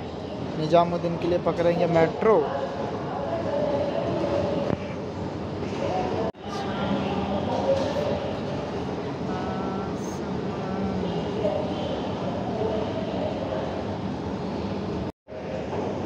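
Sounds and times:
hubbub of passengers' voices: 0:00.0 - 0:16.0.

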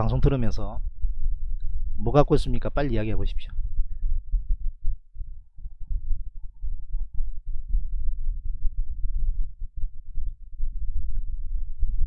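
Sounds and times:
low irregular rumble: 0:00.0 - 0:12.0.

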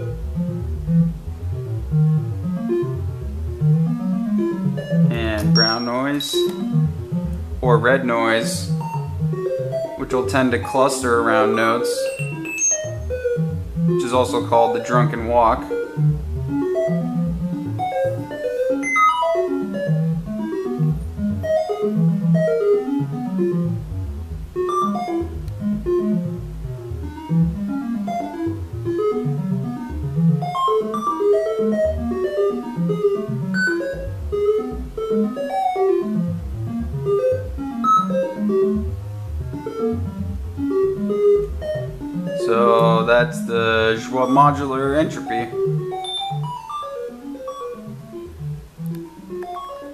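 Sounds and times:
synthesizer short pitched notes: 0:05.1 - 0:09.2, 0:42.4 - 0:46.7.

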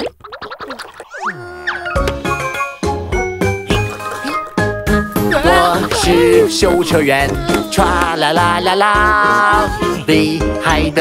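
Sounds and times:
instrumental children's song: 0:01.8 - 0:11.0.

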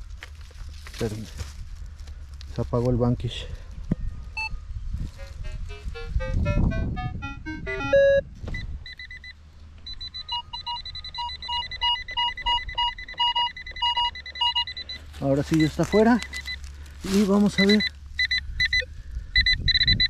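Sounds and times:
low rumble of handling noise: 0:00.0 - 0:19.4
steady electronic tone: 0:05.2 - 0:16.6
metal detector beeps: 0:07.2 - 0:20.0.

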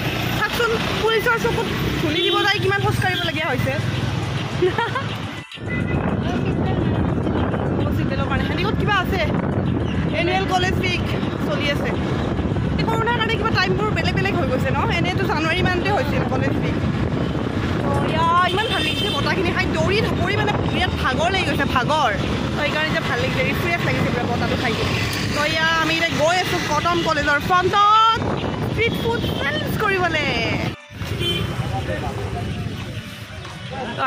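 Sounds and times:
wind and road noise: 0:00.0 - 0:34.0
woman talking: 0:07.8 - 0:09.3, 0:10.1 - 0:12.0, 0:12.8 - 0:16.8, 0:17.8 - 0:30.8.

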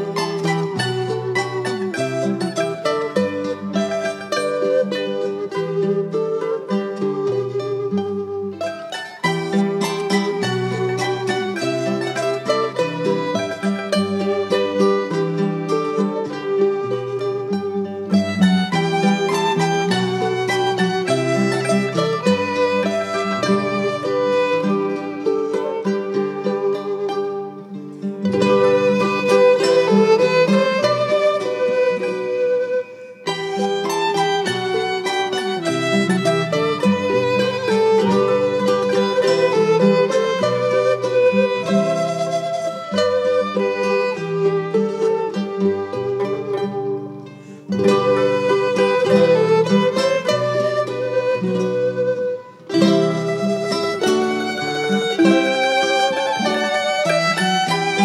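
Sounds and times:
fiddle: 0:00.0 - 0:58.0
plucked strings: 0:00.0 - 0:58.0.

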